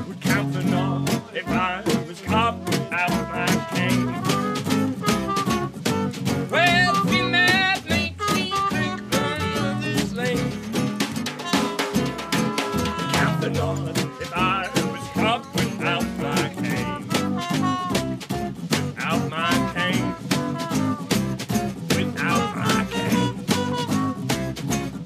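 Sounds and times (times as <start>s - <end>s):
trumpet lead line: 0.0s - 10.6s, 11.4s - 24.4s
double bass: 0.0s - 25.0s
guitars: 0.0s - 25.0s
snare drum beat: 0.0s - 25.0s.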